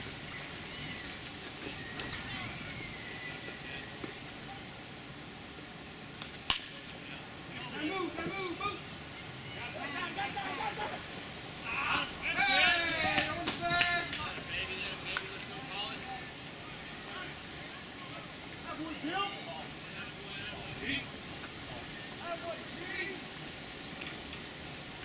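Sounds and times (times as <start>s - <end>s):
steady hiss: 0.0s - 25.0s
people calling out: 7.3s - 23.4s
louder shouting: 9.4s - 14.8s.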